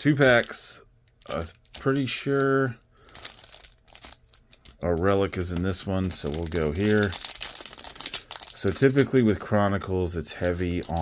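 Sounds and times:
foil packs crinkling: 0:01.2 - 0:11.0.

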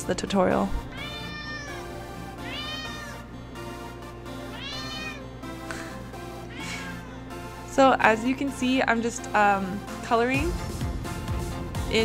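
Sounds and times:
cat meowing: 0:00.9 - 0:03.3, 0:04.4 - 0:05.3, 0:06.4 - 0:07.1.

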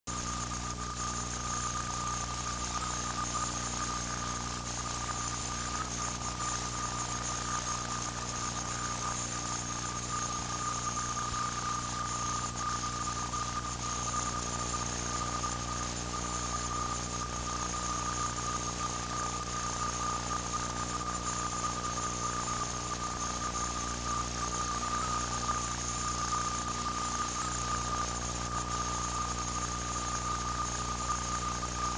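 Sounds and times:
high-pitched whine: 0:00.1 - 0:31.9
low electrical hum: 0:00.1 - 0:31.9
constant hiss: 0:00.2 - 0:31.9.

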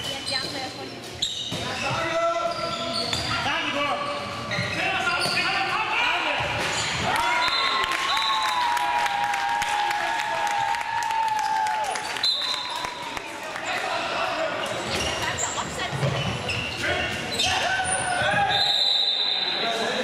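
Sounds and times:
shoes squeaking on floor: 0:00.0 - 0:05.8, 0:14.7 - 0:19.6.

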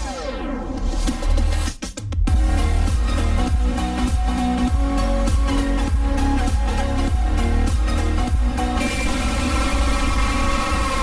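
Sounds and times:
music tones: 0:02.3 - 0:11.0.

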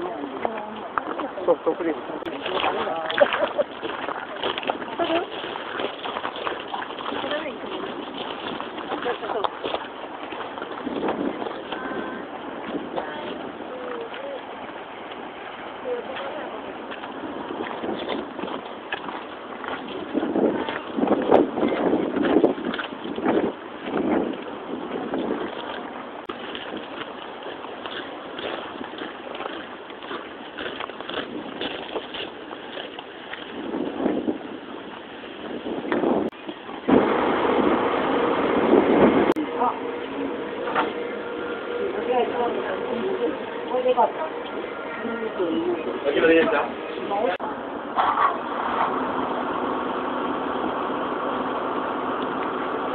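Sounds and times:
wind noise on microphone: 0:00.0 - 0:52.9
muffled voices talking: 0:39.4 - 0:47.6.

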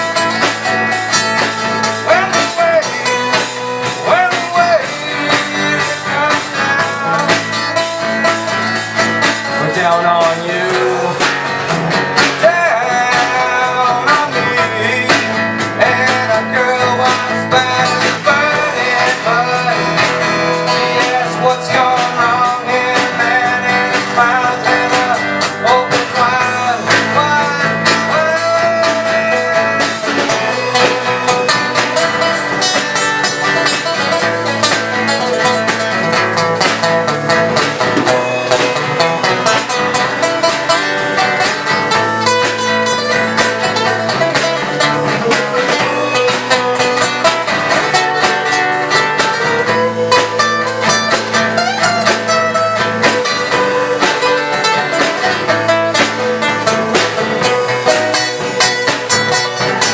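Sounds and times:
acoustic guitar chords: 0:00.0 - 0:59.9
drum kit: 0:00.0 - 0:59.9
guitar melody line: 0:00.0 - 0:59.9.

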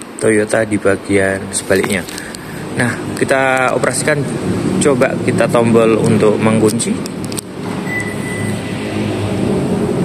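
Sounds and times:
low steady hum: 0:00.0 - 0:10.0
mirror motor whine: 0:07.1 - 0:10.0.

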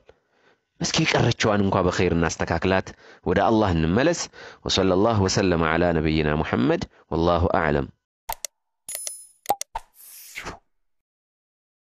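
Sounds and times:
sharp clicks: 0:08.3 - 0:09.8.

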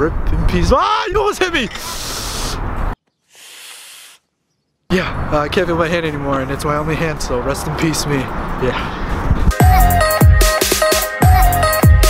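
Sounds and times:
man hissing through teeth in pain: 0:01.8 - 0:02.7, 0:03.3 - 0:04.3.

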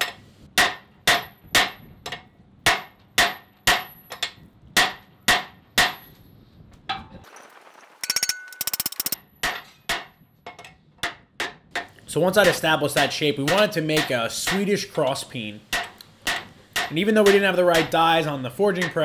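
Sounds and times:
hammer clanging on anvil: 0:08.0 - 0:14.8, 0:15.7 - 0:18.0, 0:18.7 - 0:19.0.

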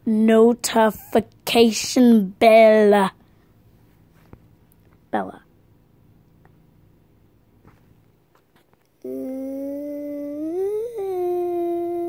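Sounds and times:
girl singing a held note: 0:09.0 - 0:12.0.

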